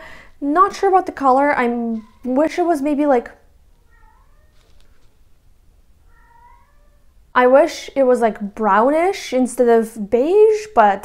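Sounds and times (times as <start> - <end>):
cat meowing faintly: 3.8 - 5.0, 6.0 - 7.1.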